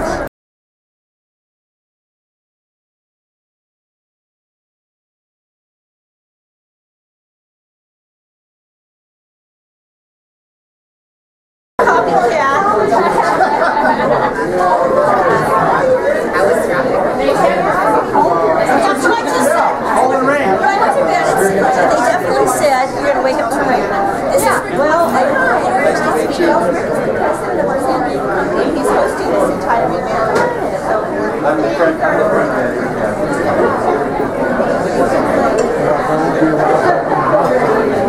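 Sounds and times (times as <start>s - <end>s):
crowd chatter: 0.0s - 0.3s, 11.8s - 38.0s.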